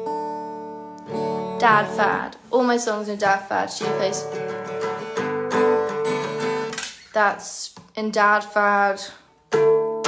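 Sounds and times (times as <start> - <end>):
acoustic guitar chord strummed: 0.0 - 2.5, 3.2 - 6.9, 9.4 - 10.0.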